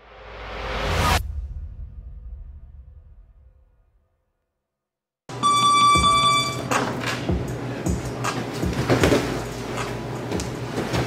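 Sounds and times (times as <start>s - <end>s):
steady electronic tone: 5.3s - 6.8s
noisy background: 5.3s - 11.0s.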